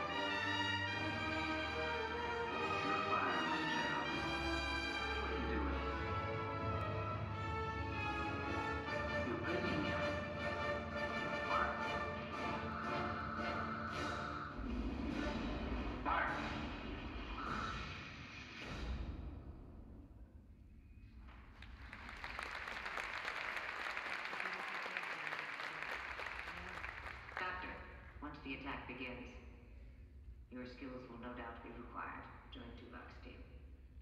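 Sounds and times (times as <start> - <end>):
orchestra playing slow music: 0.0 - 14.6
deep rumble: 13.4 - 21.5.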